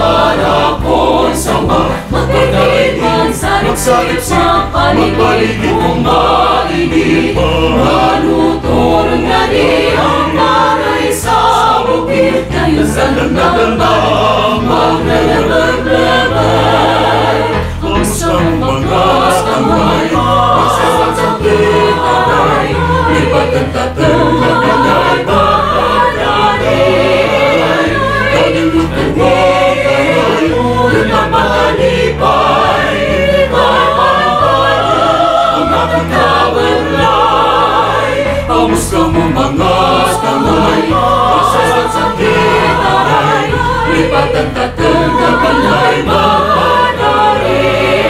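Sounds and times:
choir singing with instruments: 0:00.0 - 0:48.0.

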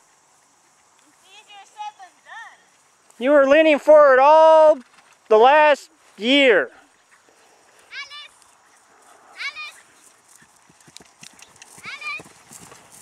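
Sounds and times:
horse hoofbeats on grass: 0:00.0 - 0:13.0.

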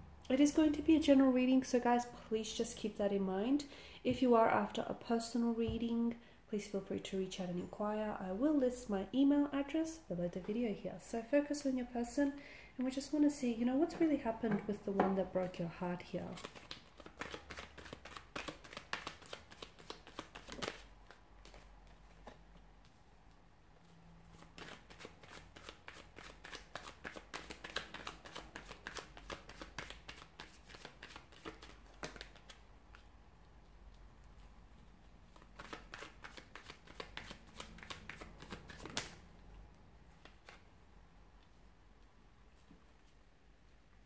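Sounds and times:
cards being shuffled: 0:16.3 - 0:22.4, 0:24.3 - 0:33.1, 0:35.3 - 0:39.2, 0:40.1 - 0:40.7.

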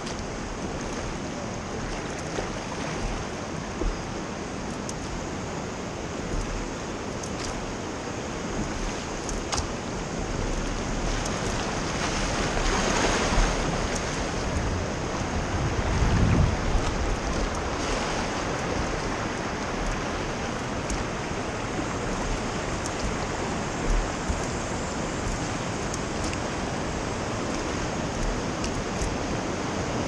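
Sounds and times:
oars splashing: 0:00.0 - 0:30.0
river water rushing: 0:00.0 - 0:30.0
wind on microphone: 0:08.4 - 0:30.0.

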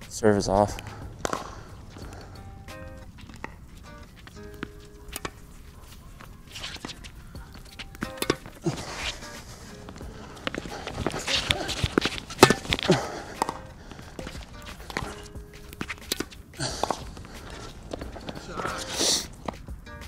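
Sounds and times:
background music: 0:00.0 - 0:20.0
racket hitting tennis ball: 0:00.0 - 0:20.0
shoes squeaking on court: 0:00.0 - 0:20.0.

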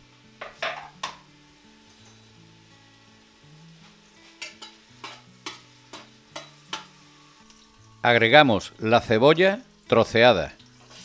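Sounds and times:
peppers sizzling in oil: 0:00.0 - 0:11.0
soft background music: 0:00.0 - 0:11.0.

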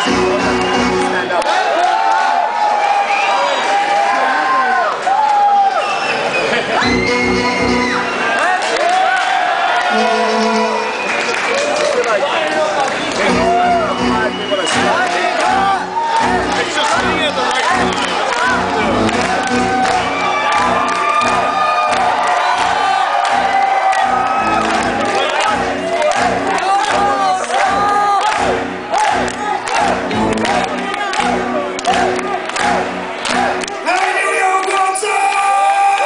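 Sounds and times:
crowd shouting and cheering: 0:00.0 - 0:36.0.

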